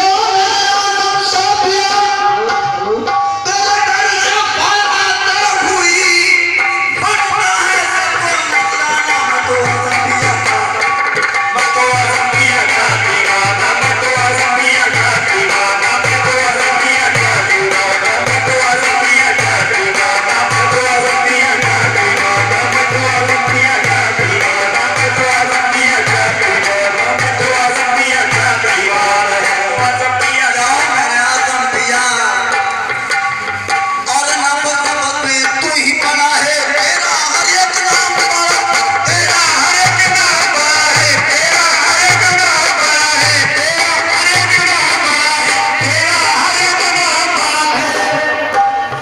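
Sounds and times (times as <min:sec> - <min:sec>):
harmonium melody: 0:00.0 - 0:49.0
drum beat: 0:00.1 - 0:49.0
group singing: 0:03.5 - 0:33.0, 0:35.7 - 0:49.0.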